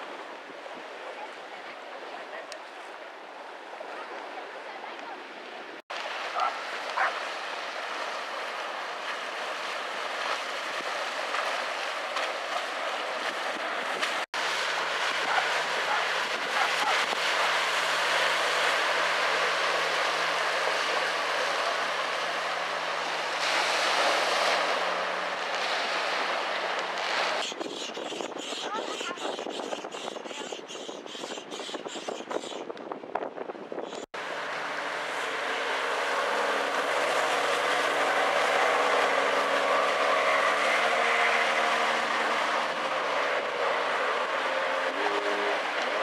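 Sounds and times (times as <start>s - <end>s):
outboard boat engine: 0.0s - 27.7s, 28.3s - 31.6s, 34.1s - 46.0s
jet ski engine passing: 6.0s - 27.3s, 34.2s - 46.0s.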